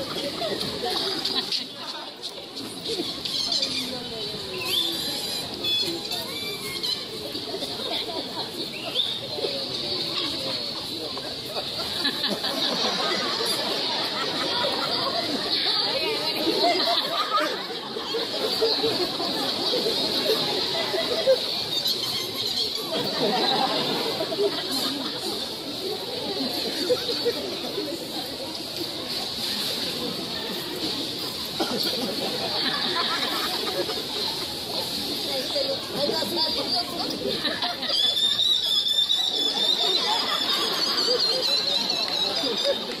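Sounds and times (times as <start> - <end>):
chatter of people talking: 0.0 - 43.0
steady street hiss: 0.0 - 43.0.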